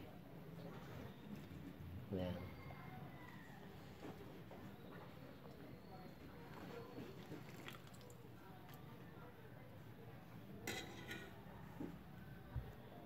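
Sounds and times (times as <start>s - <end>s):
ladle clinking against pot: 10.6s - 11.4s
metal ladle stirring soup: 10.6s - 11.5s.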